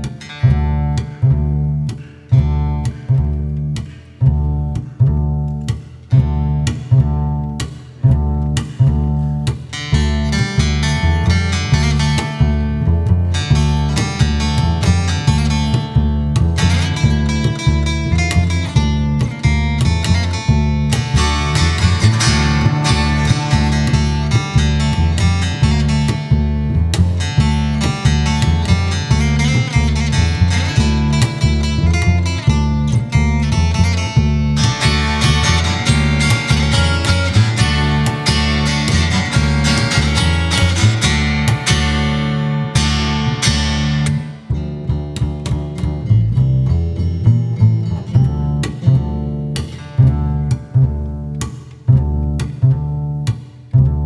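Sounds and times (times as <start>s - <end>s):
acoustic guitar strumming: 0.0s - 53.8s
double bass line: 0.0s - 54.0s.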